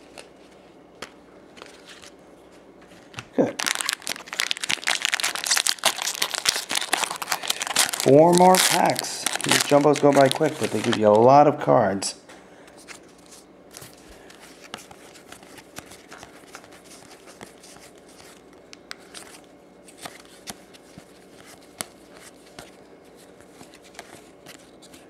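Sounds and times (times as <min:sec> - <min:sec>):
cards flipped through by hand: 0:04.0 - 0:11.1, 0:12.7 - 0:22.8, 0:23.4 - 0:25.0.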